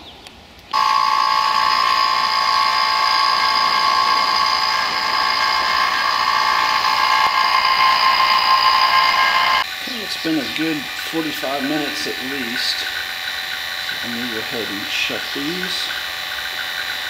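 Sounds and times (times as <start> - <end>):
vacuum pump whining: 0.7 - 17.0.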